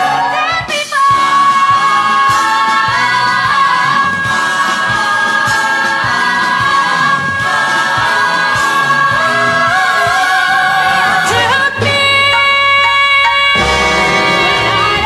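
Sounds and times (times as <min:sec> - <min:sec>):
band with a regular beat: 0:00.0 - 0:12.0, 0:13.6 - 0:15.0
backing choir: 0:01.2 - 0:12.0, 0:13.5 - 0:15.0.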